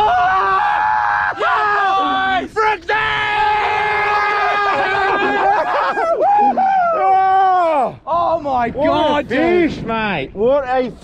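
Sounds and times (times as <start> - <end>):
men yelling and whooping: 0.0 - 9.8.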